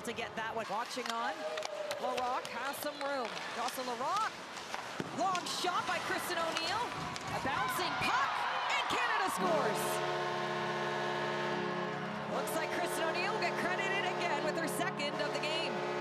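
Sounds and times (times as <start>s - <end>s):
crowd cheering and shouting: 7.2s - 9.9s
goal horn blast: 7.4s - 16.0s.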